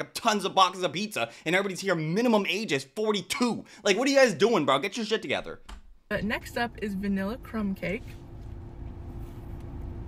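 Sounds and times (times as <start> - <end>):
car interior rumble: 6.1 - 10.0.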